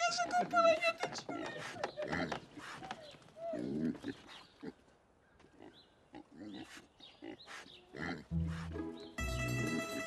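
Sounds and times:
young pig grunting: 1.4s - 4.8s, 5.5s - 8.8s
music: 8.3s - 10.0s.

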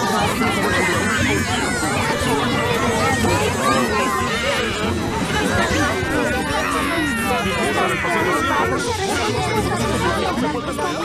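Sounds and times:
overlapping cartoon character voices: 0.0s - 11.0s.

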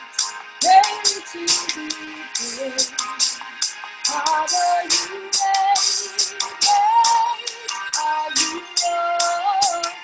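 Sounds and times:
person singing long notes: 0.6s - 3.0s.

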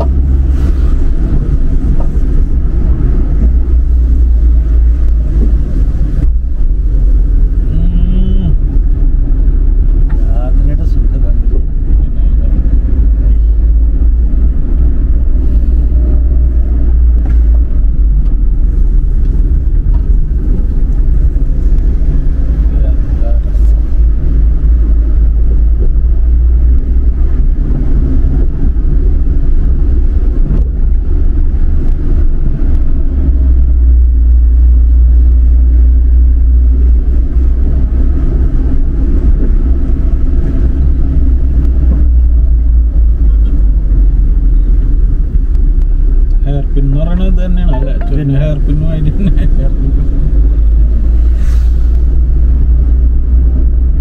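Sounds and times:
car interior road rumble: 0.0s - 54.0s.

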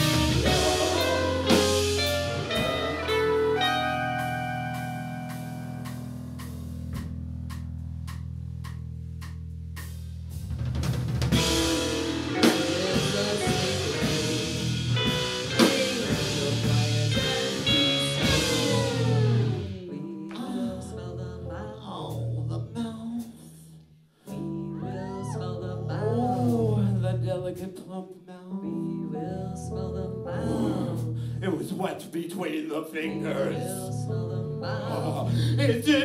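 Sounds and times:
live rock band playing: 0.0s - 6.7s, 11.3s - 19.8s.

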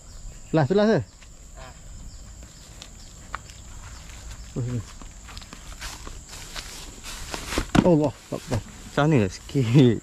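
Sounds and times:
footsteps through grass: 1.1s - 9.8s.

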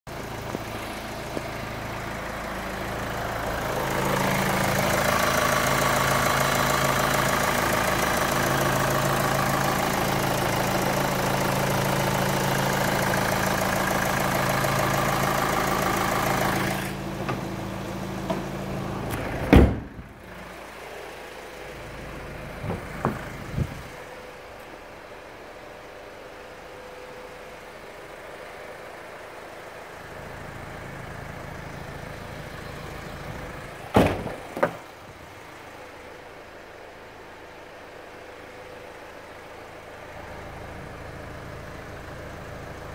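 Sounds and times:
car engine idling: 0.1s - 42.9s
car hood slamming: 19.2s - 20.1s, 22.6s - 23.8s, 33.9s - 34.8s.

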